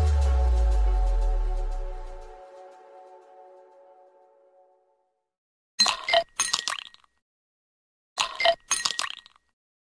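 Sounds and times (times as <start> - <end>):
glassy clinks: 8.3 - 9.4.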